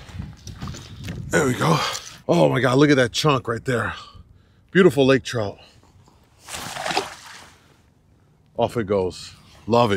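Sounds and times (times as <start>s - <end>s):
water splash and slosh: 6.4s - 7.6s.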